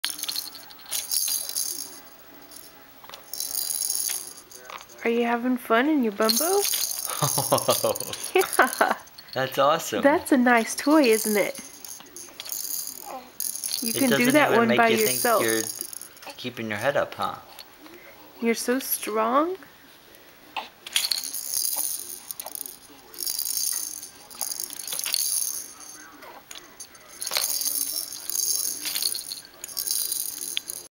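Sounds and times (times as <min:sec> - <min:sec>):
plastic toy rattling: 0:00.1 - 0:02.0, 0:03.1 - 0:04.9, 0:06.2 - 0:09.4, 0:10.8 - 0:16.2, 0:20.8 - 0:30.9
woman speaking: 0:05.0 - 0:06.7, 0:08.3 - 0:09.0, 0:10.0 - 0:11.6, 0:13.8 - 0:15.7, 0:18.4 - 0:19.6.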